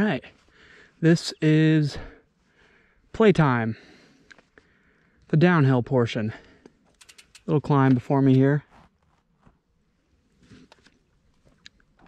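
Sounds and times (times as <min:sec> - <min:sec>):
faint clicks: 0:06.6 - 0:07.5.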